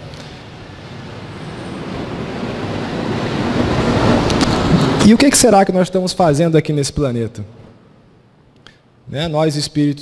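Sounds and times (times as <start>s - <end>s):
rushing noise: 0.0s - 6.0s.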